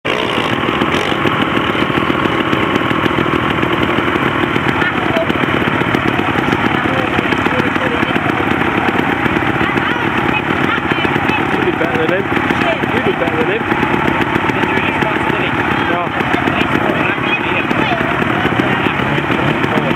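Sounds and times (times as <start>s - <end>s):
motorcycle engine running hard: 0.0s - 19.9s.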